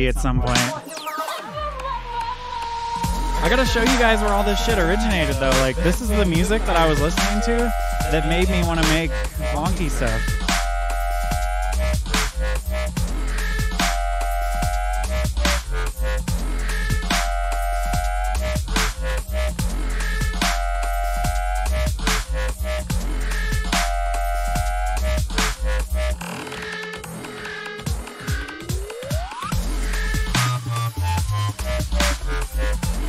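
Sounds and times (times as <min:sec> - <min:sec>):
dubstep music: 0:00.0 - 0:33.0.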